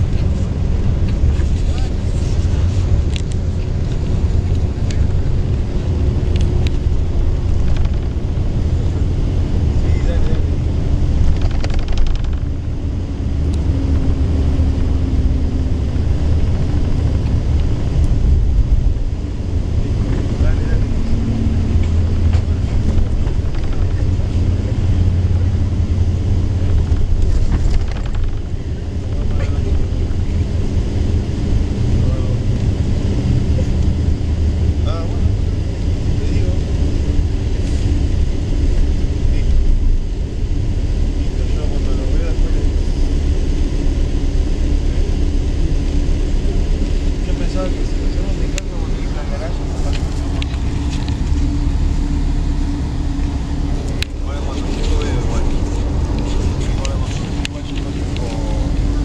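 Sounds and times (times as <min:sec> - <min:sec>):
bus engine and road drone: 0:00.0 - 0:59.0.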